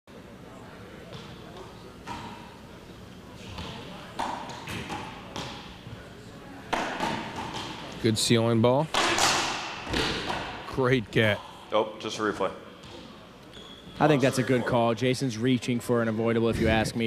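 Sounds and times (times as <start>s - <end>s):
racquetball hits: 3.5s - 5.8s, 6.7s - 7.9s, 8.9s - 10.7s.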